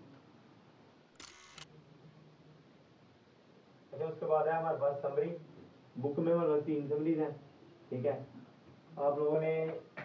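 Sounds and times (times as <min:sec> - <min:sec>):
camera shutter click: 0:01.2 - 0:01.7.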